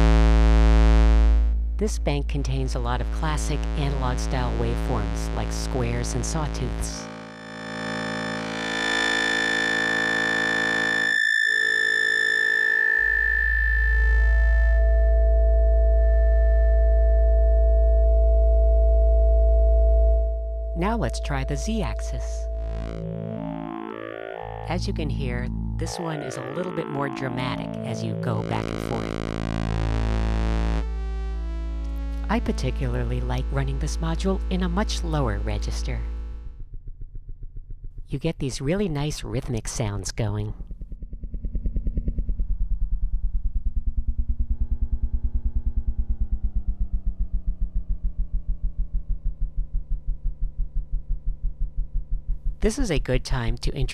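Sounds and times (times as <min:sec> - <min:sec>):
synthesizer oscillator tone: 0:00.0 - 0:39.5, 0:40.2 - 0:52.7.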